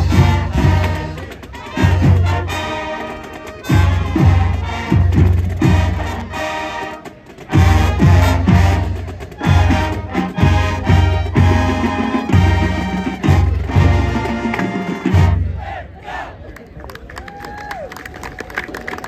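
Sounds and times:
marching band brass chords: 0.0s - 16.4s
crowd cheering and clapping: 16.1s - 19.0s.

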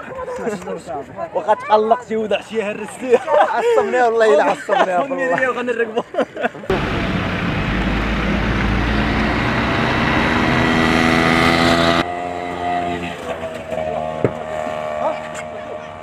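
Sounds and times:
car engine accelerating: 6.7s - 16.0s
steady engine hum: 6.7s - 16.0s.

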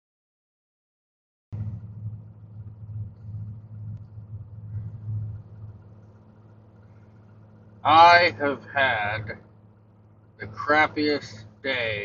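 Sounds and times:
truck engine idling: 1.6s - 12.0s.

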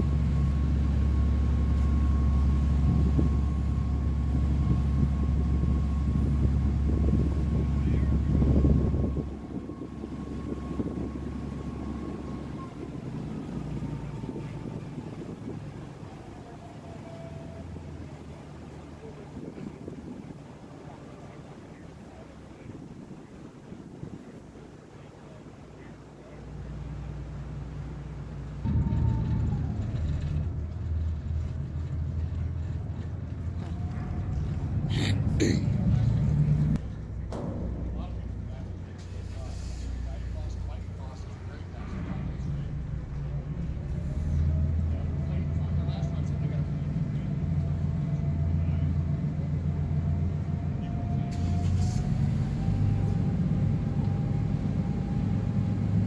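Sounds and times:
ferry engine humming: 0.0s - 56.0s.

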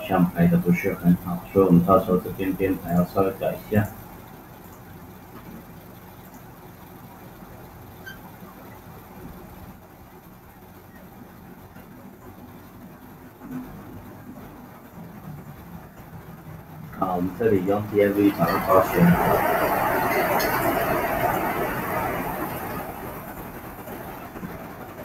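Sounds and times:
low background hum and hiss: 0.0s - 25.0s.

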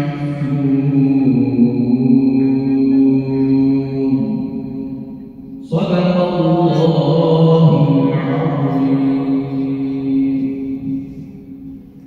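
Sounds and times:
man chanting melodically: 0.0s - 11.8s.

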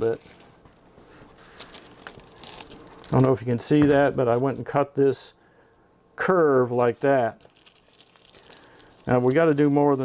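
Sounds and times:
plastic film crinkling: 1.2s - 4.5s, 6.7s - 10.0s.

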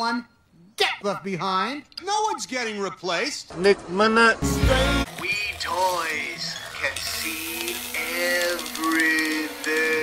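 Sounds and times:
music bed: 4.4s - 5.1s
pitch-altered sung voice: 4.4s - 5.5s
fast ticking texture: 5.1s - 10.0s.

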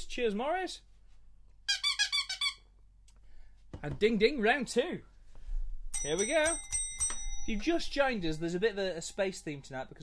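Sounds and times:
high-pitched squeaks: 1.7s - 2.6s.

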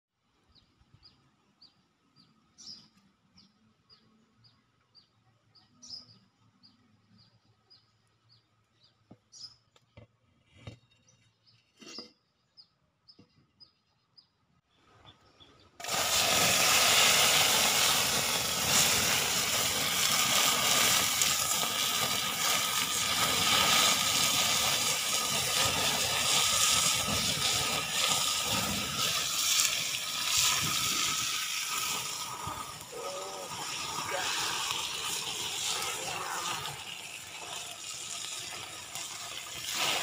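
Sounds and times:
flames flaring: 15.8s - 40.0s
food sizzling in hot oil: 15.8s - 40.0s.

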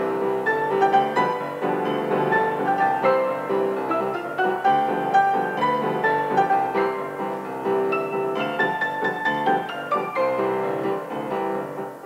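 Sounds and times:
grand piano playing: 0.0s - 12.0s.

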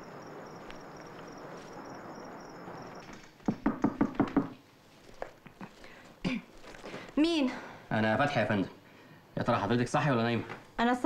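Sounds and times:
crickets chirping: 0.0s - 4.6s
knocking on a door: 3.5s - 4.6s.

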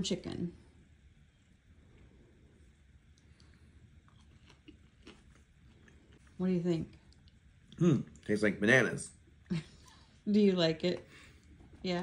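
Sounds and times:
person chewing food: 3.0s - 6.4s.

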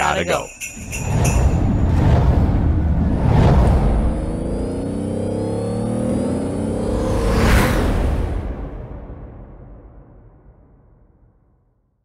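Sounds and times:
whoosh: 0.7s - 5.9s, 6.6s - 10.8s
car engine revving effect: 1.0s - 8.6s.

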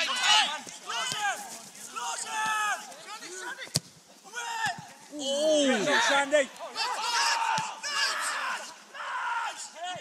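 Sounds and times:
people shouting calls: 0.0s - 10.0s.

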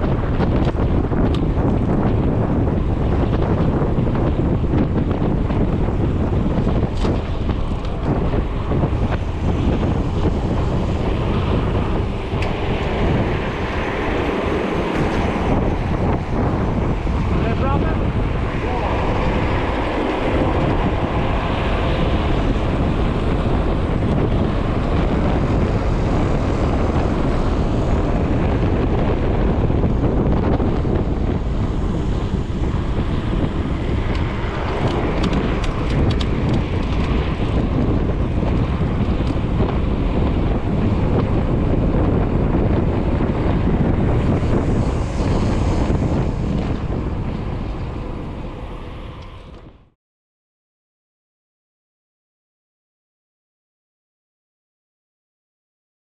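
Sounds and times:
road and tyre rumble: 0.0s - 50.0s
wind buffeting microphone: 0.0s - 50.0s.

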